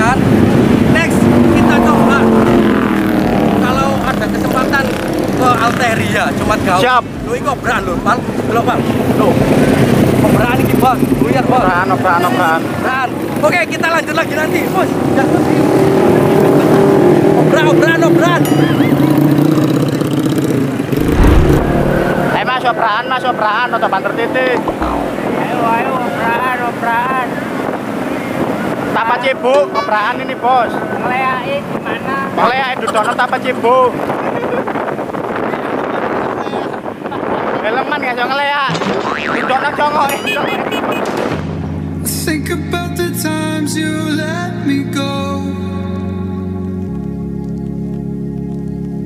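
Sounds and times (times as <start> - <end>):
motorcycle engine running: 18.8 - 22.4
wind buffeting microphone: 20.6 - 22.8, 24.4 - 29.0, 30.6 - 41.5
people's voices: 28.4 - 41.0.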